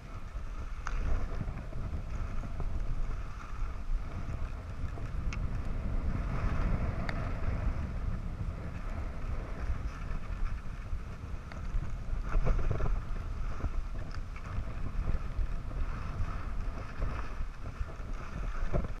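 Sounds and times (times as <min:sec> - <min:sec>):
skis scraping over snow: 0:00.0 - 0:19.0
wind buffeting microphone: 0:00.0 - 0:19.0.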